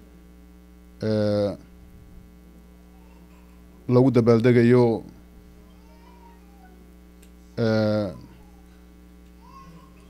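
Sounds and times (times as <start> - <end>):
low steady hum: 0.0 - 10.0
man's voice holding a syllable: 1.0 - 1.7, 3.9 - 5.2, 7.6 - 8.3.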